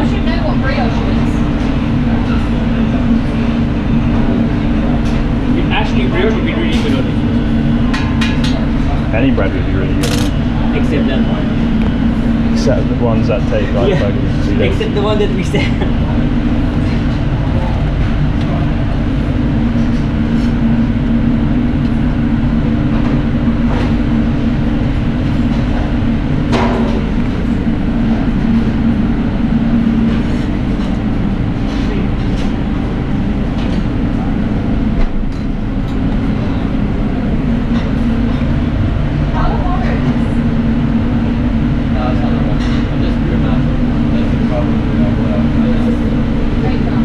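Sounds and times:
kitchen machinery hum: 0.0 - 47.0.

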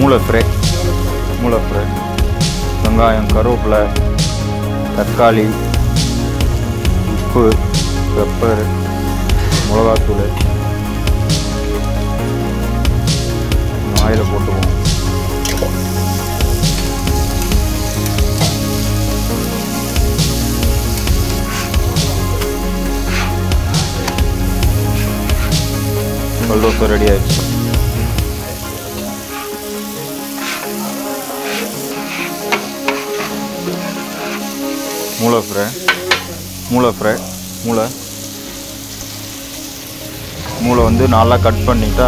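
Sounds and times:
background music: 0.0 - 42.0
food sizzling on a griddle: 0.0 - 42.0
metal spatula scraping: 21.0 - 24.2, 30.3 - 35.0.

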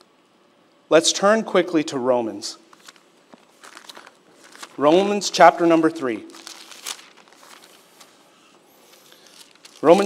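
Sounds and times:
pages being turned: 2.7 - 5.0, 6.3 - 10.0.

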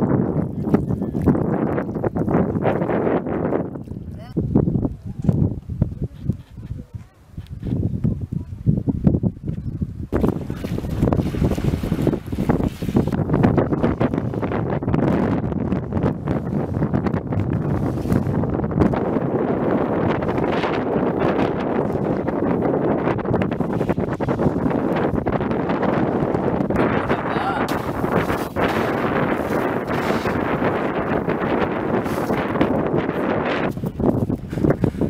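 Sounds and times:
wind buffeting microphone: 0.0 - 35.0.

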